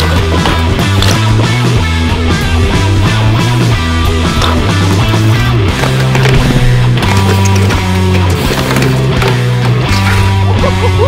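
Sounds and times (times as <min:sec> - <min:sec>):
rock music with distorted guitar: 0:00.0 - 0:11.0.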